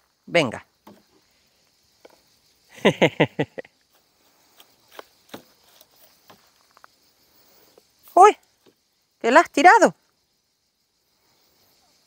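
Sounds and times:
insects chirring: 0.0s - 12.0s
person laughing: 2.7s - 3.8s.

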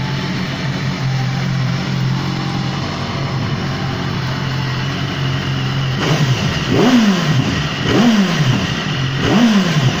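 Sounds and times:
motorcycle engine idling and revving: 0.0s - 10.0s.

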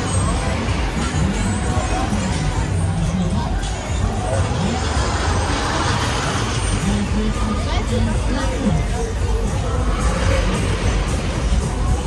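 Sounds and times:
crowd voices: 0.0s - 12.0s
low rumble of rides: 0.0s - 12.0s.

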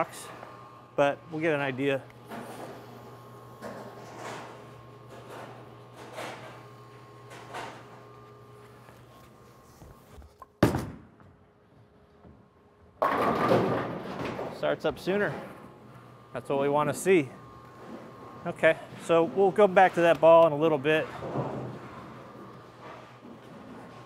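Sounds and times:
bowling ball thud: 10.6s - 11.4s, 13.0s - 14.5s.

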